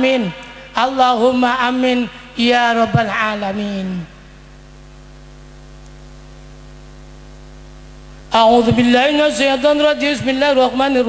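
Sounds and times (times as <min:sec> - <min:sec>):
electrical mains hum: 0:00.0 - 0:11.0
faint hiss: 0:04.1 - 0:08.8.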